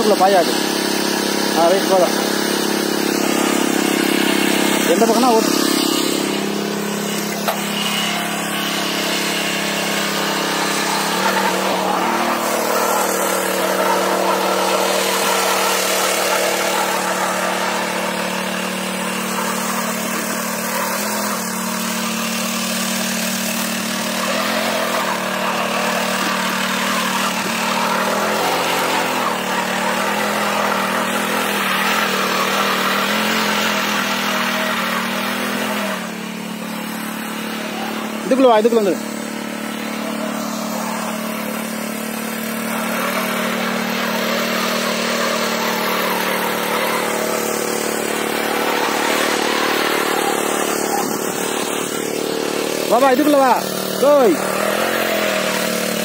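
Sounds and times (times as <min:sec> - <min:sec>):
small petrol engine running: 0:00.0 - 0:56.0.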